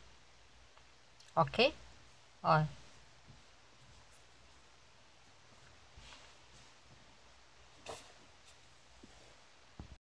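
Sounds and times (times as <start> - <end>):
soft rustle: 1.8 - 10.0.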